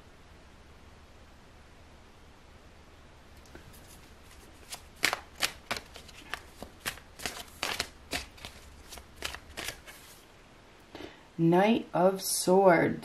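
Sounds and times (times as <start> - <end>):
cards being shuffled: 3.4 - 10.3.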